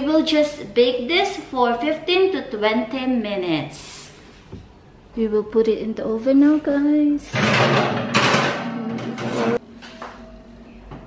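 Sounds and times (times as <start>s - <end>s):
skillet scraping on oven rack: 7.3s - 9.6s.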